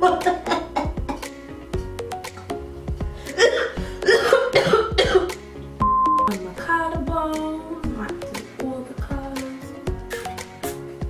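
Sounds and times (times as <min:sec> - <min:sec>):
background music: 0:00.0 - 0:11.0
woman coughing: 0:03.4 - 0:05.3
high test-tone beep: 0:05.8 - 0:06.4.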